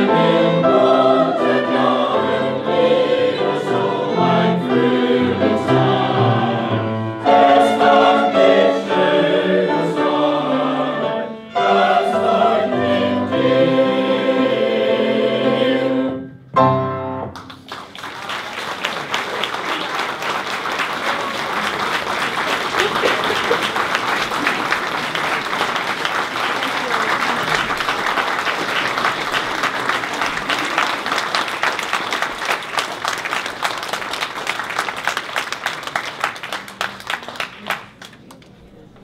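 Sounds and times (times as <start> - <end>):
audience applauding: 17.4 - 38.8.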